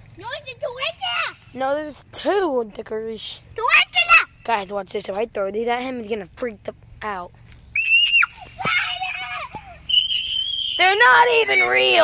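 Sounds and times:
child screaming: 0:07.8 - 0:12.0.

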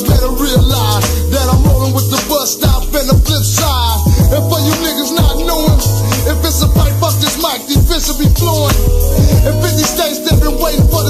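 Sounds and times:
hip hop beat with bass: 0:00.0 - 0:11.0
rapped vocal: 0:00.0 - 0:11.0.

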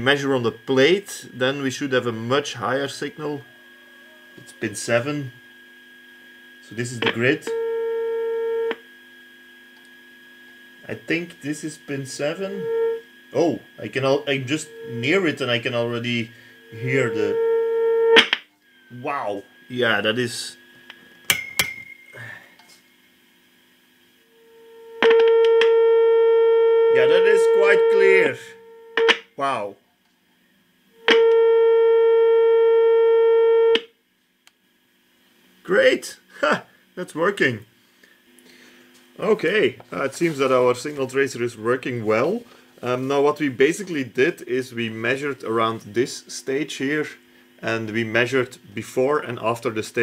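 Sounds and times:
loudspeaker steady tone: 0:00.0 - 0:05.4, 0:06.6 - 0:08.8, 0:10.8 - 0:20.7, 0:24.2 - 0:29.8
faint steady hum: 0:00.0 - 0:50.0
probe click: 0:08.6 - 0:08.8, 0:25.0 - 0:25.8, 0:28.9 - 0:29.3.

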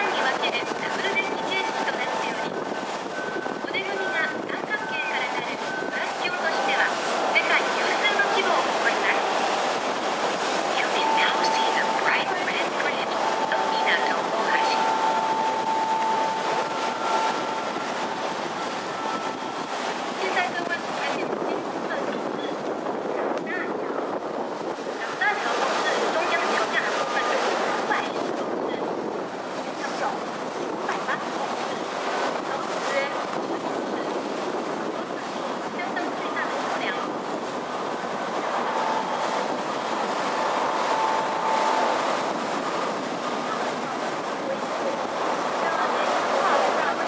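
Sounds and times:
faint voices: 0:00.0 - 0:47.0
water rushing along ship hull: 0:00.0 - 0:47.0
wind buffeting microphone: 0:00.0 - 0:47.0.

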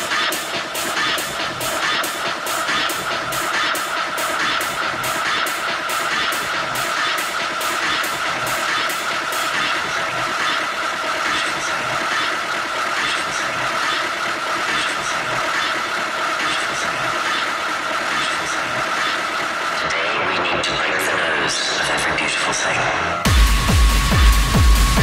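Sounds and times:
hard techno music: 0:00.0 - 0:25.0.

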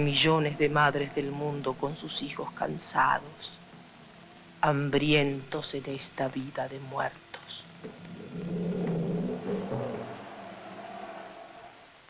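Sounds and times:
low droning tone: 0:07.8 - 0:11.3.

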